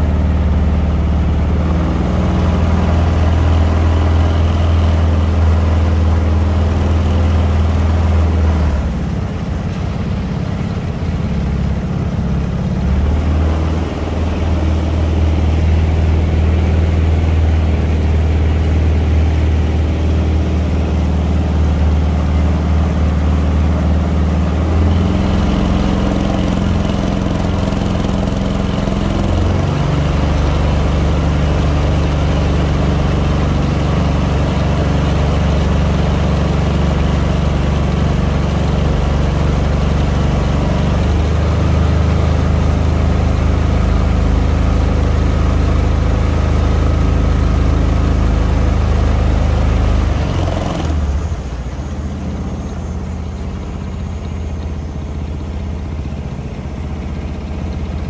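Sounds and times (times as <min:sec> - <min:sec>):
small gasoline engine running: 0:00.0 - 0:58.0.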